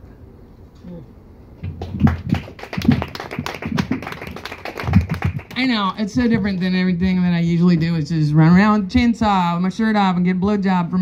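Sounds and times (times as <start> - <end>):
audience clapping: 1.6 - 6.7.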